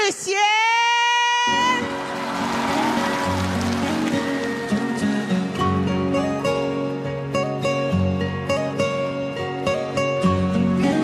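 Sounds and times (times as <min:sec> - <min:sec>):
pop ballad instrumental: 0:01.9 - 0:11.0.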